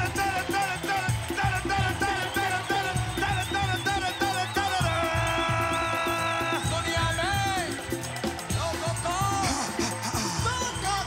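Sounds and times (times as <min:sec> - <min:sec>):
drum beat: 0:00.0 - 0:11.0
live band music: 0:00.0 - 0:11.0.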